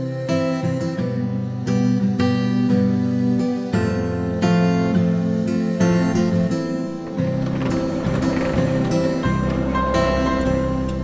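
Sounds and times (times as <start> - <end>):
acoustic guitar music: 0.0 - 11.0
sliding barn door rumbling open: 6.0 - 11.0.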